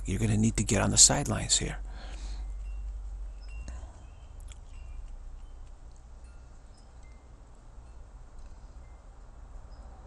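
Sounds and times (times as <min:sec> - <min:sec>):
low steady rumble: 0:00.0 - 0:10.0
faint high chime-like tones: 0:01.5 - 0:10.0.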